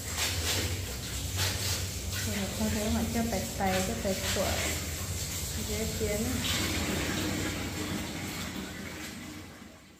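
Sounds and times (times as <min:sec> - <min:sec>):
hands scrubbing clothes in water: 0:00.0 - 0:09.5
tap water running into tub: 0:00.0 - 0:09.9.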